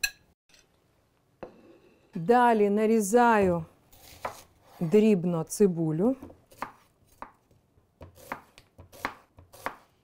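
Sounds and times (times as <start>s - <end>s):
knife slicing onion on cutting board: 3.9s - 5.0s, 6.2s - 7.4s, 8.0s - 10.0s.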